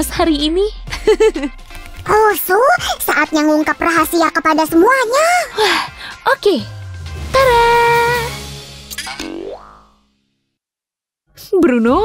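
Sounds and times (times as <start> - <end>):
soft background music: 0.0 - 9.3
rising boing cartoon effect: 9.0 - 10.0.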